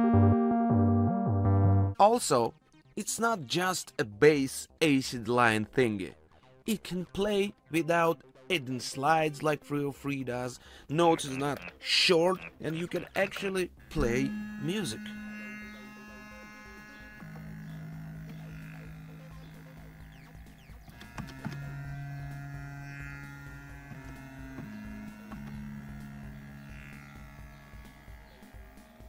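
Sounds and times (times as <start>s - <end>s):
buzzy bass synthesizer notes: 0.0s - 2.0s, 12.4s - 29.0s.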